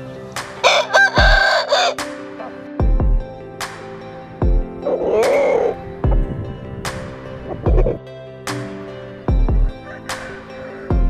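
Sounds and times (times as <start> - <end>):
rooster crowing: 0.6 - 2.0, 9.8 - 11.0.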